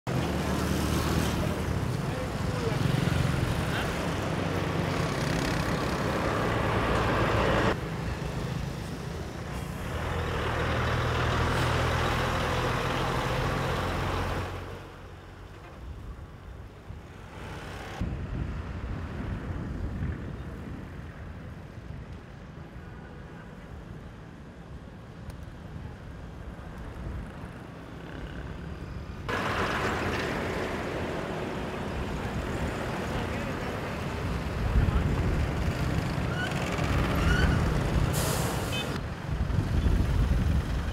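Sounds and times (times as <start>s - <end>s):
motorcycles passing: 0.1s - 9.4s, 27.1s - 38.1s
cars passing: 0.1s - 15.4s, 27.2s - 40.9s
distant traffic: 0.1s - 40.9s
lorry engine hum: 24.7s - 40.9s.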